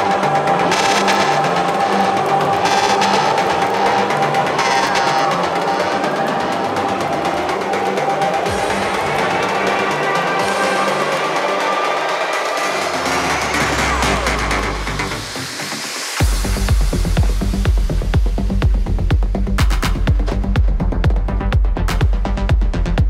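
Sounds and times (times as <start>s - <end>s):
house music drums: 0.0s - 23.0s.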